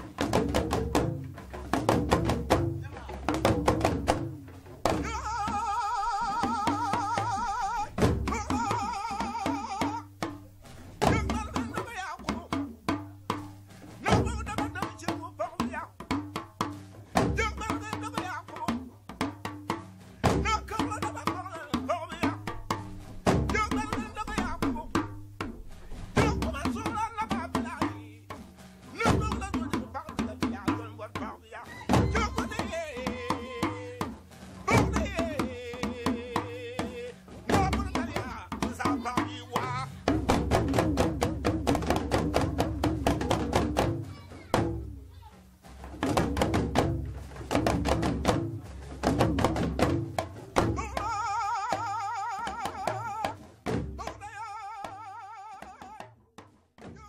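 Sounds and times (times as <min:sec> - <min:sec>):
deep bass drum beats: 0:00.0 - 0:56.0
talking drums bending pitch: 0:00.0 - 0:56.2
person singing with vibrato: 0:04.8 - 0:10.2, 0:28.9 - 0:40.2, 0:50.7 - 0:53.4, 0:54.0 - 0:56.1.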